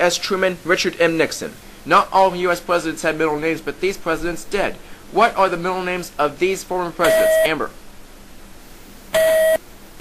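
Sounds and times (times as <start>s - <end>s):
electronic beep tone: 7.1s - 7.5s, 9.2s - 9.6s.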